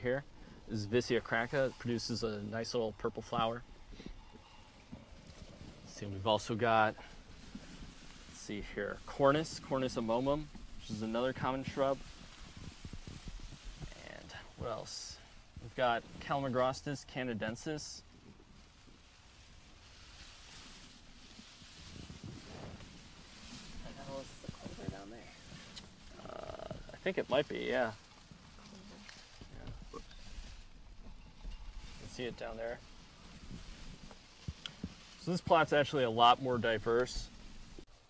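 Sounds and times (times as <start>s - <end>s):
low rumble on microphone: 0.0s - 16.6s, 20.9s - 35.3s
rustling of tall grass: 0.0s - 38.0s
soft low bumps: 0.0s - 38.0s.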